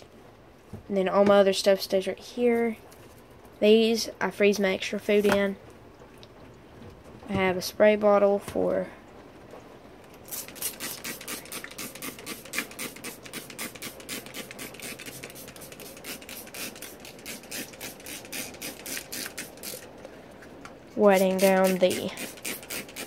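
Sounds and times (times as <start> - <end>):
spray bottle squirting: 10.3 - 19.9, 21.2 - 23.0.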